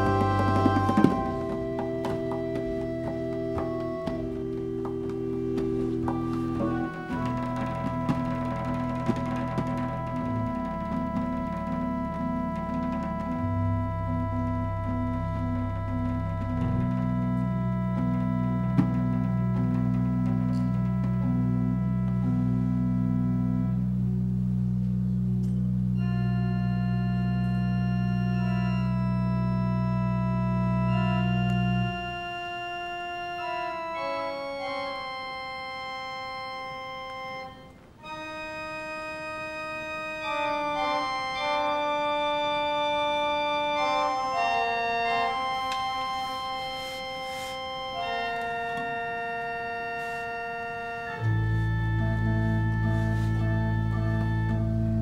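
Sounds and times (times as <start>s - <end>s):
deep organ pedal bass: 0.0s - 55.0s
pipe organ chords: 0.0s - 55.0s.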